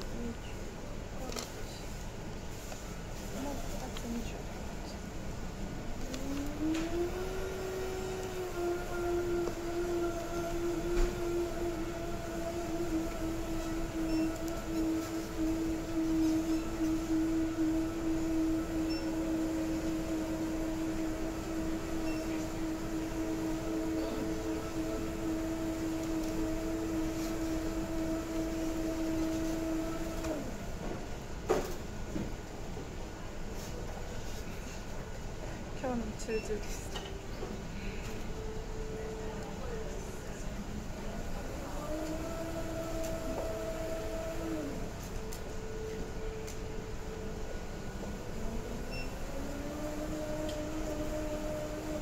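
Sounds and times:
electric motor hum: 5.9 - 30.9, 41.4 - 52.0.

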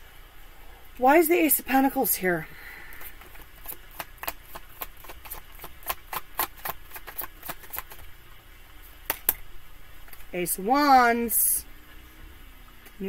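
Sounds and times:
cards being shuffled: 3.0 - 8.1.

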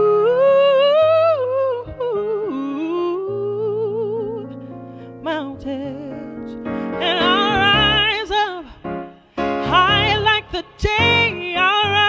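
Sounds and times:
woman singing with vibrato: 0.0 - 4.6, 5.2 - 8.9, 9.6 - 12.0
electronic keyboard chords: 1.7 - 12.0.

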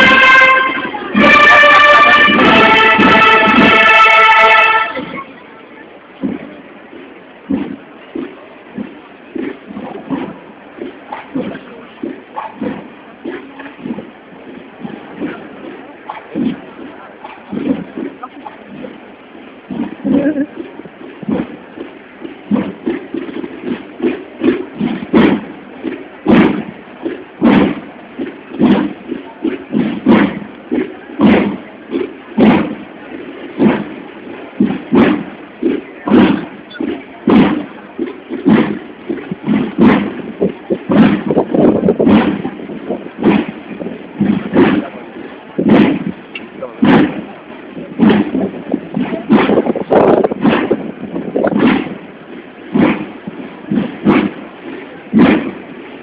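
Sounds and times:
procession drum beating: 0.0 - 5.4, 6.2 - 56.0
crowd murmur: 0.0 - 56.0.

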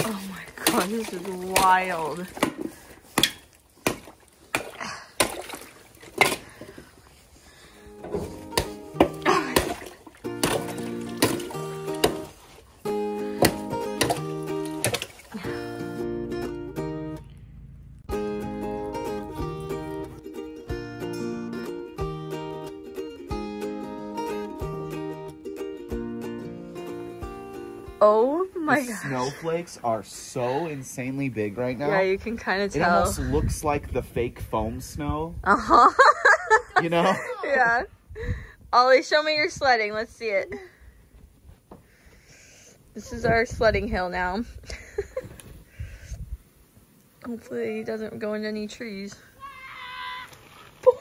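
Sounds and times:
stick knocking ice in water: 0.0 - 6.5, 8.1 - 12.4, 13.3 - 15.2
plucked string music with beat: 7.9 - 17.4, 18.1 - 28.1.

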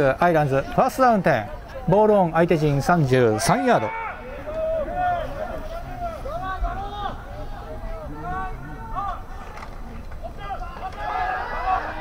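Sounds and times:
stadium background noise: 0.0 - 12.0
men shouting: 10.4 - 12.0.

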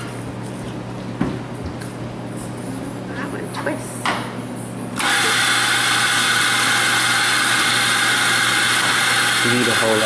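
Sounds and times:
coffee grinder whirring: 5.0 - 10.0.

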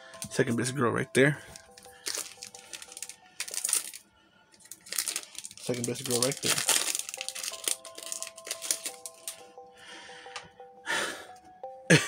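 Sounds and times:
faint background music: 0.0 - 12.0
trading cards rustling: 1.4 - 9.5.

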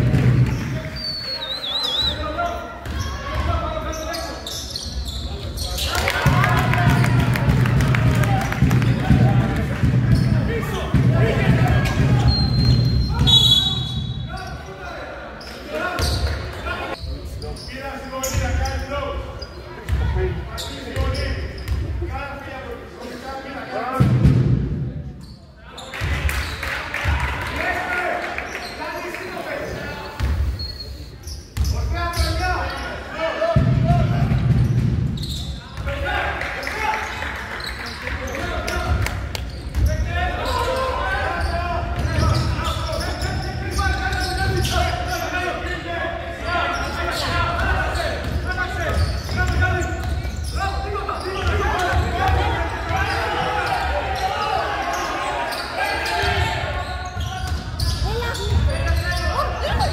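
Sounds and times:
basketball bouncing on wooden court: 6.2 - 13.3, 19.9 - 20.1, 33.6 - 35.9, 47.6 - 50.4, 57.2 - 59.0.

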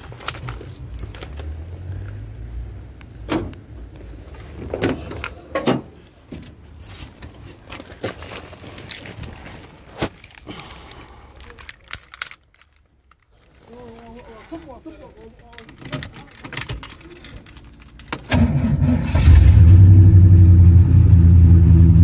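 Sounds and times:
keys jangling: 0.1 - 1.8, 10.1 - 18.3.

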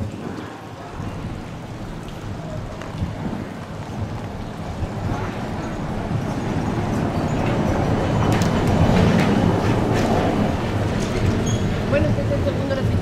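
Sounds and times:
bus passing: 0.0 - 13.0.

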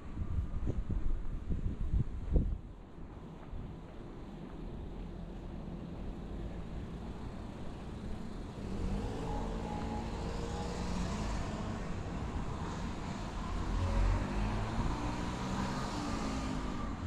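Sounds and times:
cars driving past: 6.0 - 17.0.

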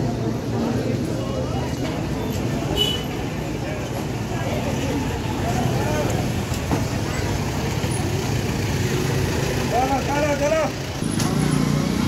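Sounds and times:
busy street traffic rumble: 0.0 - 12.0.

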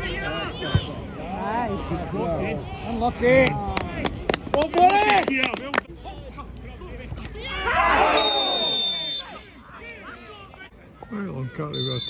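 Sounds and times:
spectators and players shouting: 0.0 - 3.7, 7.0 - 12.0
referee's whistle: 8.0 - 9.4, 11.6 - 12.0.

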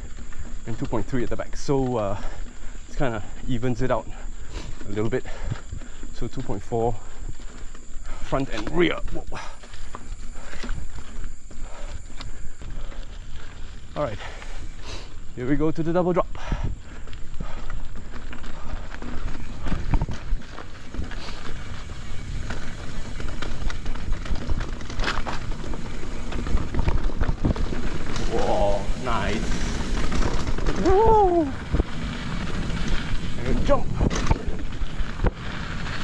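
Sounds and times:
bike tyres rumbling on dirt trail: 0.0 - 36.0
wind on microphone: 25.8 - 35.4.

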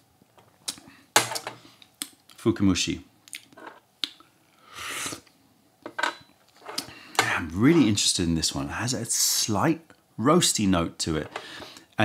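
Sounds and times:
short breathy noise: 4.6 - 5.3.

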